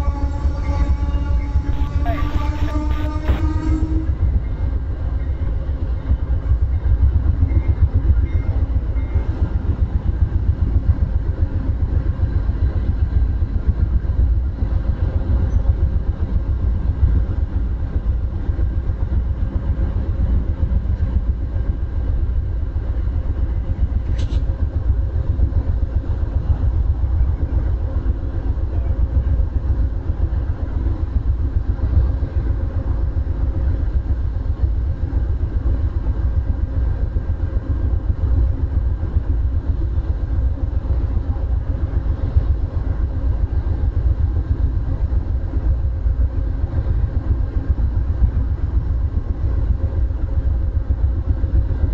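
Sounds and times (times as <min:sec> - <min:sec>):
diesel locomotives idling: 0:00.0 - 0:51.9.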